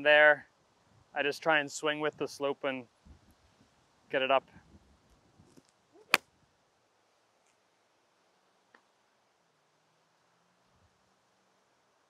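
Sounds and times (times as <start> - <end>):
golf club striking ball: 6.0 - 6.3.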